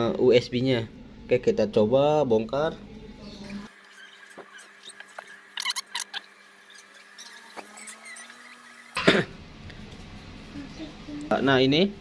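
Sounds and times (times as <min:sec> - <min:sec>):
high squeaky solder sizzling: 0:03.4 - 0:09.0.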